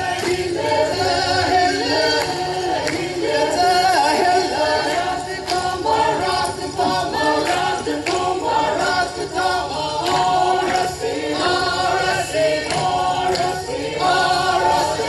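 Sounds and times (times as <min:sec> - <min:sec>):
group singing a folk chant: 0:00.0 - 0:15.0.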